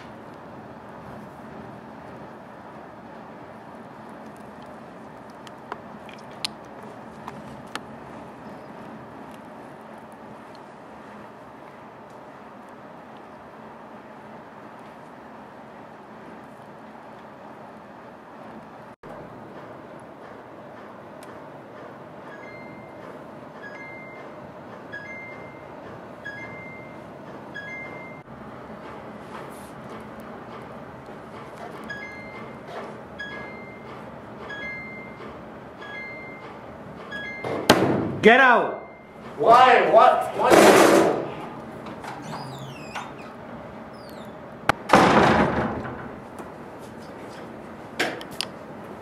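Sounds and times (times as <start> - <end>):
door slamming: 37.5 - 38.2, 40.4 - 43.3, 44.8 - 46.2
door squeaking: 41.2 - 45.9.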